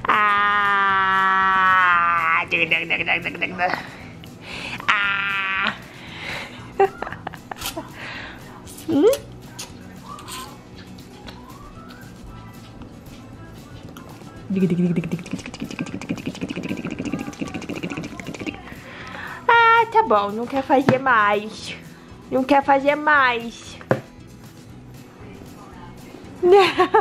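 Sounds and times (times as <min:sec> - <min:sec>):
background music: 0:00.0 - 0:27.0
baby squealing: 0:04.9 - 0:05.8
rough sustained vocal sound: 0:14.5 - 0:19.4.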